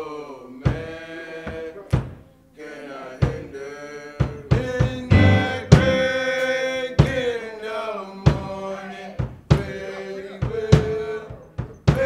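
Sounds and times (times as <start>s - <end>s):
boys choir singing: 0.0s - 1.8s, 2.6s - 11.3s
sharp percussion hits: 5.1s - 6.6s.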